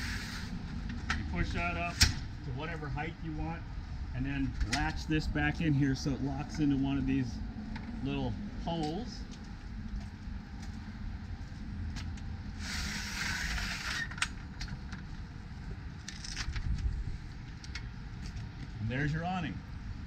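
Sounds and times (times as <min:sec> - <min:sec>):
metal arm hissing slide: 0:00.0 - 0:00.6, 0:12.6 - 0:14.1
steady low rumble: 0:00.0 - 0:20.0.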